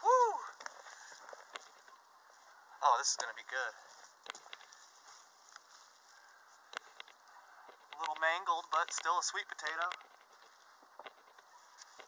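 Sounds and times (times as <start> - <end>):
rustling of potting soil: 0.0 - 12.0
sharp clicks: 6.7 - 10.3.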